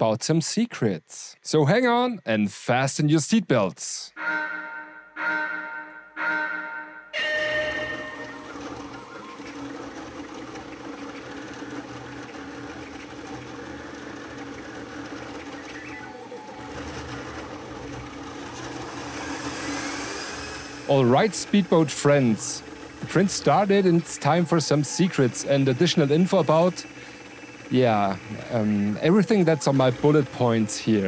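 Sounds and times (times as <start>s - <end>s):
ringing chime tones: 4.2s - 10.1s
printer motors and fans humming: 7.2s - 31.0s
rising whine: 7.2s - 31.0s.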